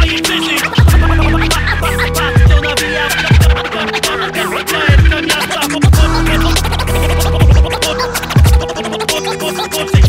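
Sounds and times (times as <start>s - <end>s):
hip hop beat: 0.0s - 10.0s
ticking hi-hats: 0.0s - 10.0s
turntable scratching: 0.0s - 10.0s
deep kick drums: 2.4s - 3.6s, 4.9s - 5.2s, 5.9s - 6.2s, 7.4s - 7.8s.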